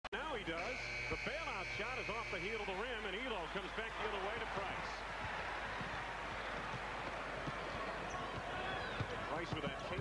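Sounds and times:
man giving basketball commentary: 0:00.1 - 0:05.1, 0:08.1 - 0:10.0.

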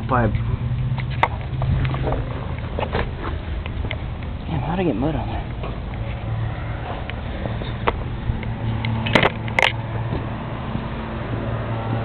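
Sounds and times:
pickup truck idling: 0:00.4 - 0:11.4.

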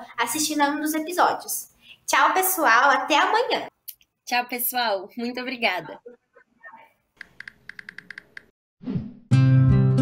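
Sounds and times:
rapid keyboard typing: 0:07.2 - 0:08.5.

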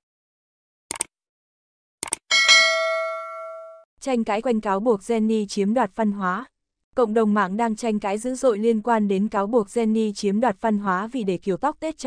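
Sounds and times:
bright bell ding: 0:02.3 - 0:03.8.

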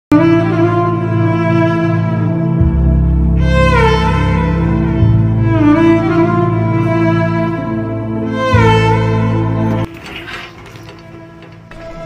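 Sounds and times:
mechanical clicks and rattling: 0:09.8 - 0:12.0.

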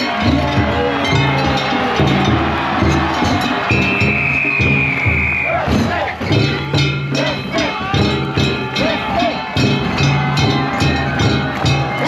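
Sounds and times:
men shouting: 0:00.0 - 0:04.4, 0:05.3 - 0:12.0.

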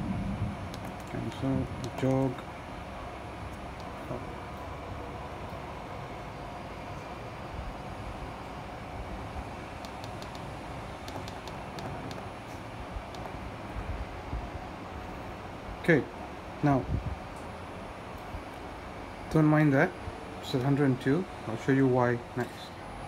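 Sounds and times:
mill axis drive running: 0:00.0 - 0:23.0.

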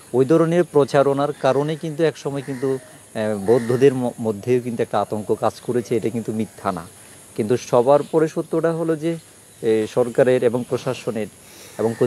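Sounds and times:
man speaking: 0:00.1 - 0:12.0.

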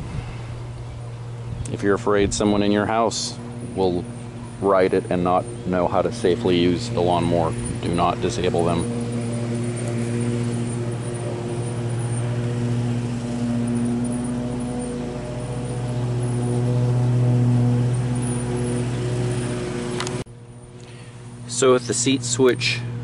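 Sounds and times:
low mechanical hum: 0:00.0 - 0:23.0.

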